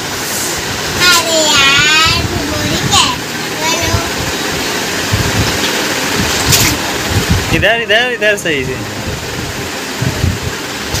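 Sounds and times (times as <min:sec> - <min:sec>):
steady rushing noise: 0:00.0 - 0:11.0
soft low thumps: 0:03.8 - 0:07.6.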